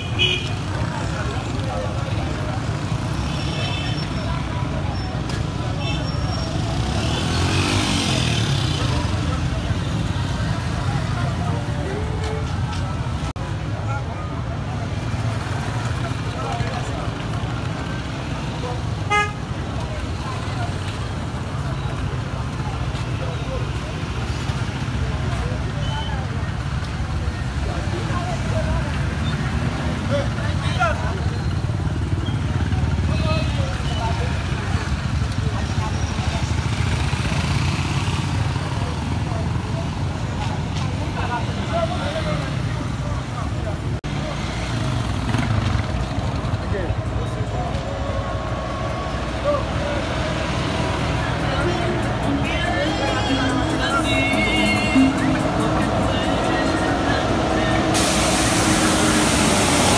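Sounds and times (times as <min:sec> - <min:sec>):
people talking: 0:00.0 - 0:31.7, 0:46.6 - 0:59.9
motorcycle and traffic rumble: 0:00.0 - 0:59.9
vehicle horn toot: 0:19.1 - 0:19.4.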